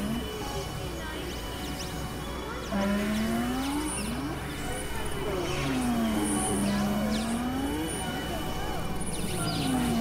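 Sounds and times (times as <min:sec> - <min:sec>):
low synthesizer hum: 0:00.0 - 0:00.3, 0:02.7 - 0:10.0
tone gliding upward: 0:02.7 - 0:04.4, 0:05.3 - 0:08.2.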